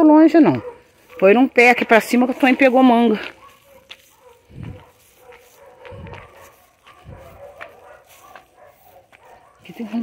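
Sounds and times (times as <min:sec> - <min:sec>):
dogs barking faintly: 0:00.4 - 0:10.0
footsteps on dirt road: 0:00.5 - 0:10.0.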